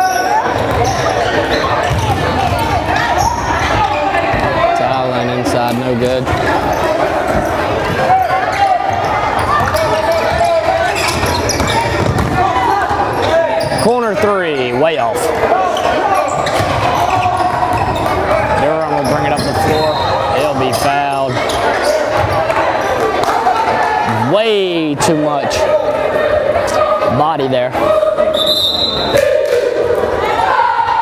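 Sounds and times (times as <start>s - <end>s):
people shouting: 6.4s - 13.8s, 15.3s - 20.4s, 25.4s - 31.0s
basketball bouncing on wood floor: 11.1s - 12.4s.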